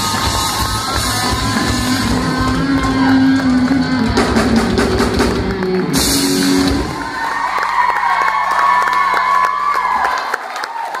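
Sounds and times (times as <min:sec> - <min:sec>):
live rock band playing: 0:00.0 - 0:09.9
crowd cheering: 0:00.0 - 0:11.0.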